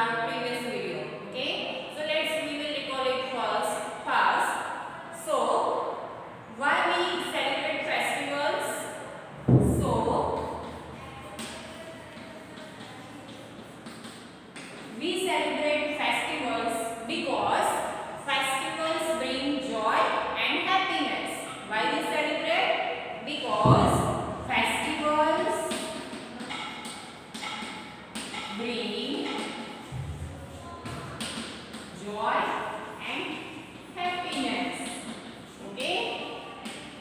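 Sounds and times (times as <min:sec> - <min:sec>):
woman speaking: 0:00.0 - 0:11.2, 0:14.9 - 0:25.8, 0:28.4 - 0:29.5, 0:31.9 - 0:36.5
heavy thump: 0:09.4 - 0:10.8, 0:23.6 - 0:24.9, 0:29.9 - 0:31.2
chalk writing on a chalkboard: 0:10.1 - 0:22.5, 0:23.4 - 0:37.0.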